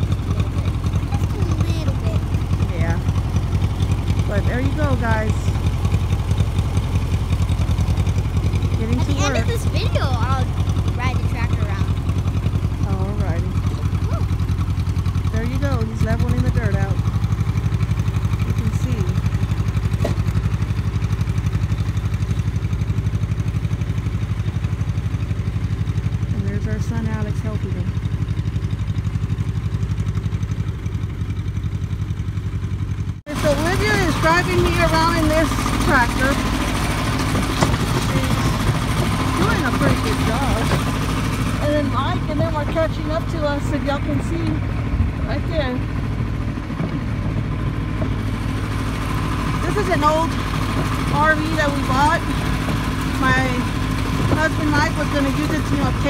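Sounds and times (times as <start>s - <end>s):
tractor engine running: 0.0s - 56.0s.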